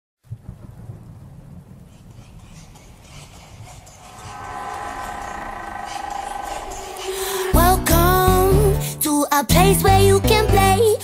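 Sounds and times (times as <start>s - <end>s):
low uneven rumble: 3.6s - 8.8s.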